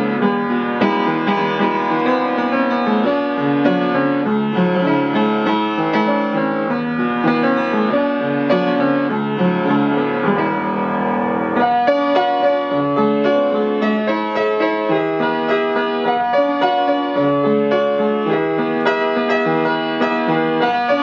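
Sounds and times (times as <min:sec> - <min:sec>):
piano playing: 0:00.0 - 0:21.0.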